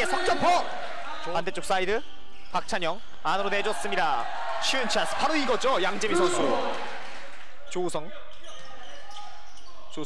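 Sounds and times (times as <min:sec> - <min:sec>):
steady hall noise: 0:00.0 - 0:10.0
sneakers squeaking: 0:01.9 - 0:03.2, 0:08.3 - 0:10.0.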